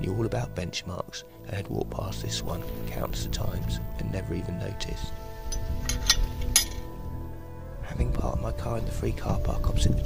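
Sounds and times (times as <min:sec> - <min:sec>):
metal gate latch clinking: 0:05.5 - 0:06.9.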